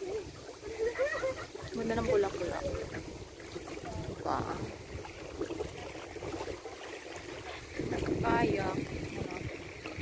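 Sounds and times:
wind buffeting microphone: 1.3s - 10.0s.

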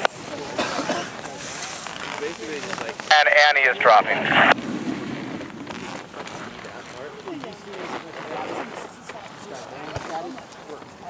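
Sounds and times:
faint background voices talking: 0.0s - 4.5s, 6.0s - 11.0s
outdoor background noise: 0.0s - 11.0s
loud spoken call: 3.1s - 4.5s.

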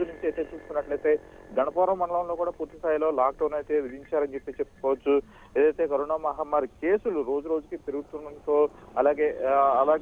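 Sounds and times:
person speaking over telephone line: 0.0s - 10.0s.

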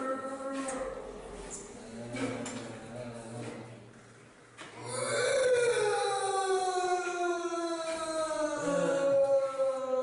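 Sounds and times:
drawn-out human moan: 4.8s - 10.0s.

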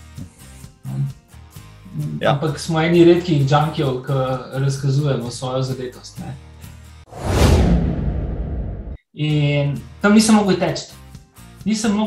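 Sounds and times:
whoosh transition effect: 7.1s - 9.0s.

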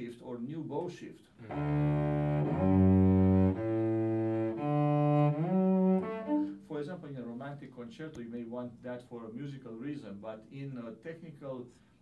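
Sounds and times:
cello bowed notes: 1.4s - 6.6s.

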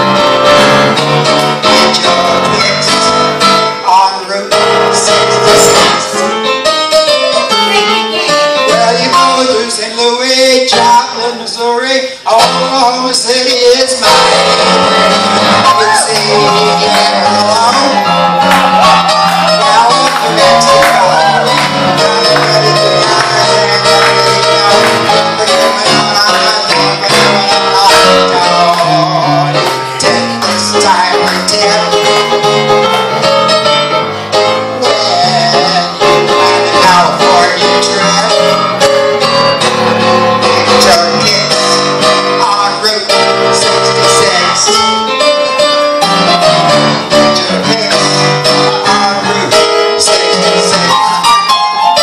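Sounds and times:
bass line: 0.0s - 9.7s, 14.0s - 45.2s
electronic keyboard playing blues: 0.0s - 52.0s.

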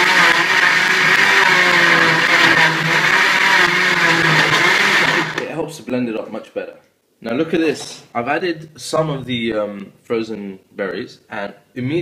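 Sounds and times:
blender motor whirring: 0.0s - 5.5s.

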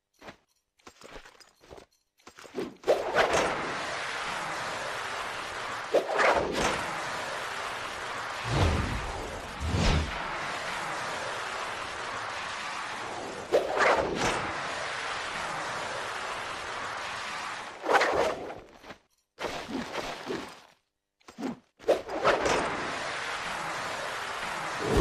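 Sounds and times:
whooshes: 3.0s - 18.4s, 24.5s - 25.0s
steady rushing noise: 3.2s - 18.0s, 22.3s - 25.0s.

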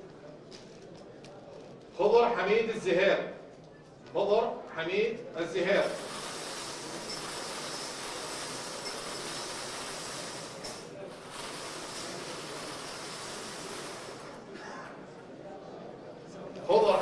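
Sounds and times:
steady hiss: 5.7s - 14.5s.

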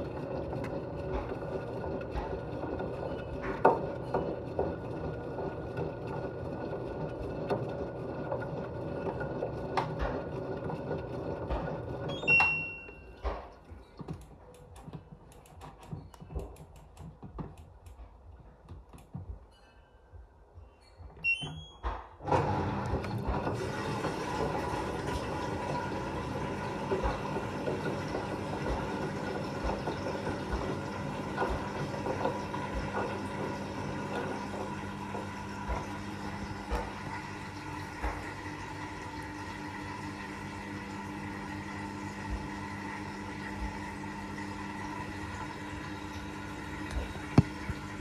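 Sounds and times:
washing machine motor humming: 0.0s - 18.0s, 21.2s - 48.0s.

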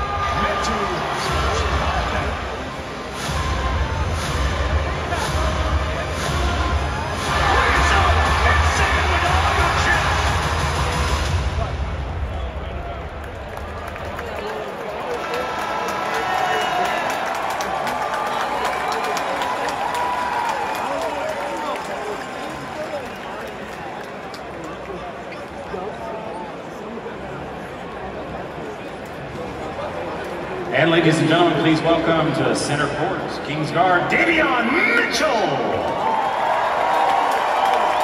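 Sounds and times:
crowd chattering: 0.0s - 19.8s, 21.0s - 35.8s
crowd shouts and cheers: 0.0s - 24.6s, 33.7s - 38.0s.

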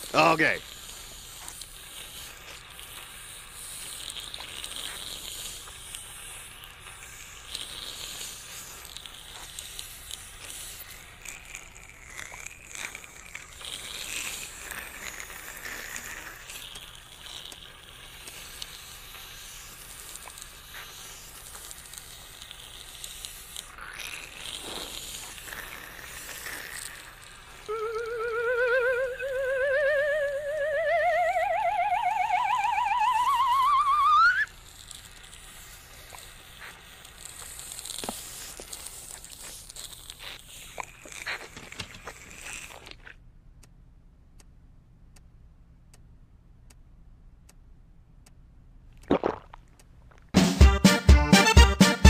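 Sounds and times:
saliva ejector sucking: 0.0s - 43.2s
wavering rising tone: 27.7s - 34.5s.

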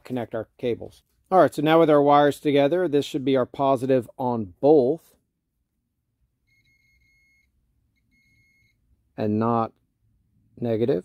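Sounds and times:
multimeter continuity beeps: 6.4s - 8.9s.

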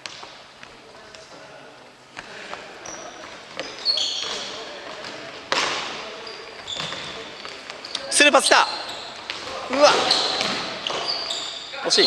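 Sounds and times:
shoes squeaking on wooden floor: 2.6s - 12.0s.

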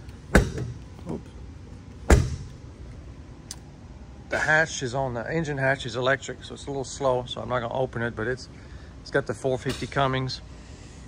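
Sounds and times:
compartment door banging shut: 0.3s - 0.8s, 2.0s - 2.6s.

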